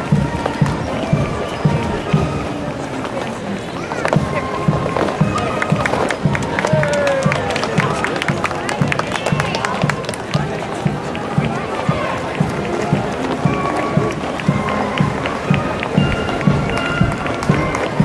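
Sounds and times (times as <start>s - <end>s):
marching band playing: 0.0s - 18.0s
spectators talking: 0.0s - 18.0s
bass drum beat: 4.2s - 8.0s, 8.8s - 18.0s.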